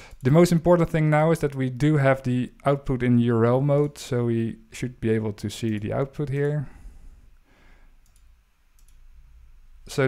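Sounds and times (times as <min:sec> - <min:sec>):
man speaking: 0:00.2 - 0:06.8
computer mouse clicks: 0:08.0 - 0:09.1.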